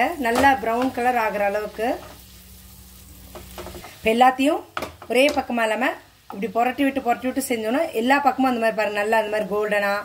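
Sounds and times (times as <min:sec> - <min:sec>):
food sizzling in oil: 0:00.0 - 0:10.0.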